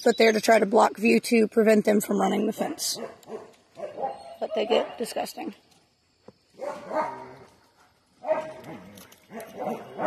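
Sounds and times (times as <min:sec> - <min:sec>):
dogs barking: 0:02.6 - 0:05.1, 0:06.6 - 0:07.5, 0:08.2 - 0:10.0.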